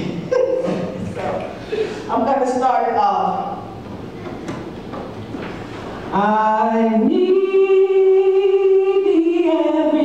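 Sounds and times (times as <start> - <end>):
hall room noise: 0.0 - 10.0.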